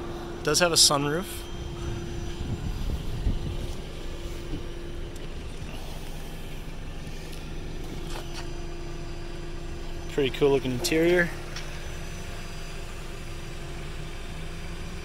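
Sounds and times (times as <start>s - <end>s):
low mechanical hum: 0.0s - 15.0s
wind rumble on microphone: 1.6s - 4.8s.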